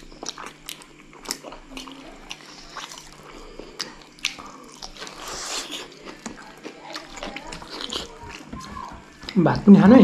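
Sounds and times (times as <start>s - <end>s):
people chewing food: 0.0s - 10.0s.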